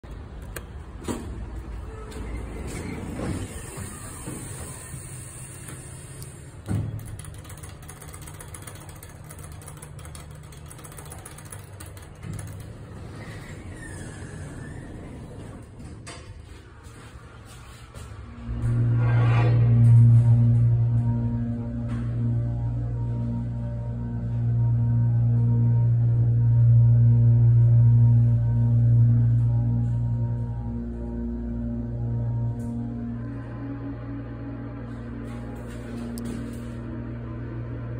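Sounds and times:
elevator machinery humming: 0.0 - 19.0.

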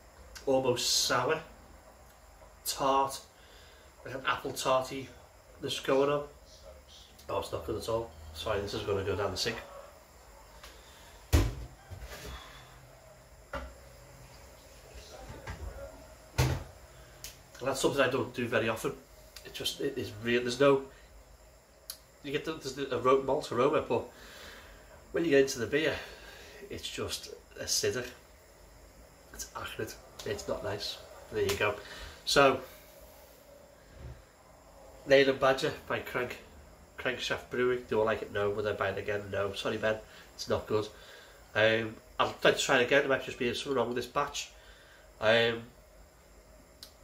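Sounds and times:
faint low thump: 11.3 - 12.0.

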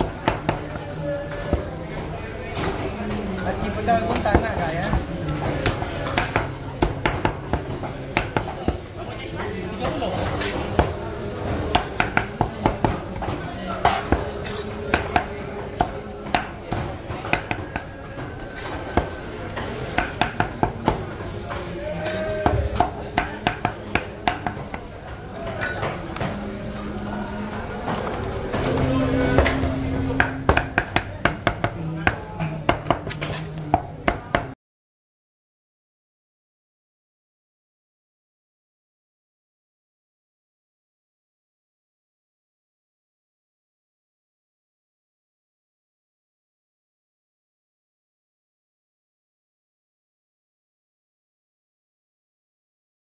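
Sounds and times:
cleaver knocking on wooden block: 30.2 - 34.5.

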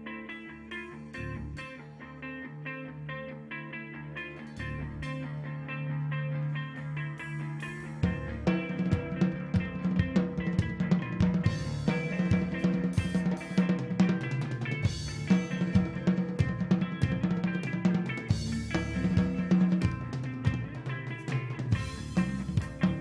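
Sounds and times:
electric guitar: 0.0 - 23.0
drum kit: 7.1 - 23.0.

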